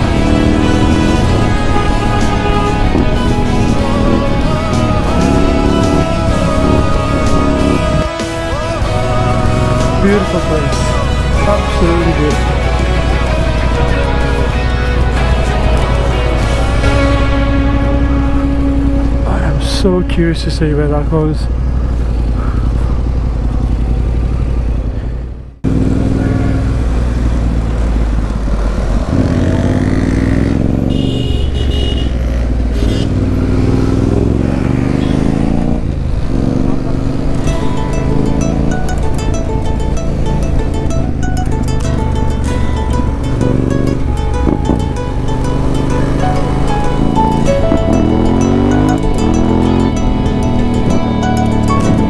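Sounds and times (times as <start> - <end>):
background music: 0.0 - 22.2, 32.9 - 52.0
motorcycle engine revving: 0.0 - 52.0
road noise: 0.0 - 52.0.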